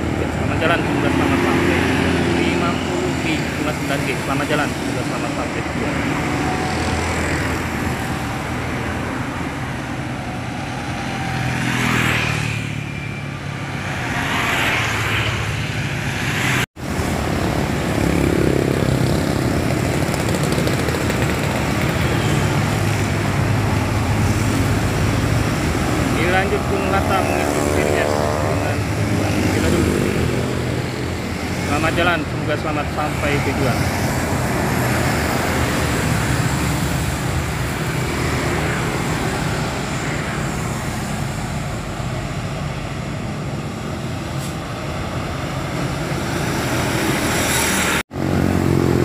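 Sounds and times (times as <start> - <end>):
motorcycles passing: 0.0 - 49.0
road traffic passing: 0.0 - 49.0.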